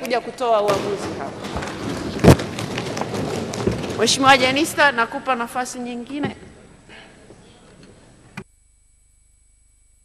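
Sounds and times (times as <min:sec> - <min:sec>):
faint microphone room noise: 0:00.0 - 0:09.9.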